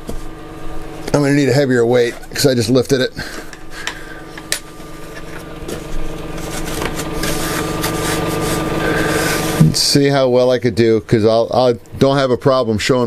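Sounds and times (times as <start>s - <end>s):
low-pitched machine hum: 0.0s - 13.0s.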